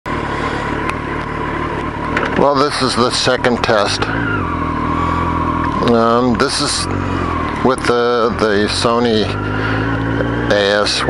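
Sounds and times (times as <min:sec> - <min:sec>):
motorcycle engine idling: 0:00.1 - 0:11.0.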